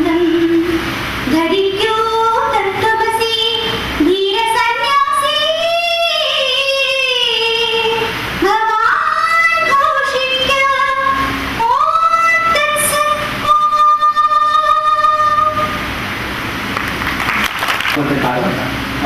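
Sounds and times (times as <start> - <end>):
noisy wash: 0.0 - 19.0.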